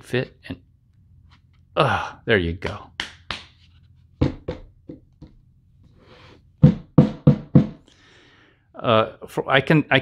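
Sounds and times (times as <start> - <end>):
knocks on hard plastic: 4.2 - 5.4, 6.6 - 7.8.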